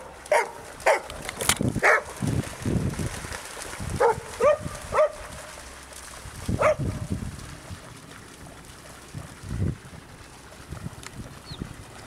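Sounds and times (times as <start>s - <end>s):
dogs barking: 0.0s - 1.1s, 1.8s - 2.2s, 4.0s - 5.3s, 6.6s - 7.0s.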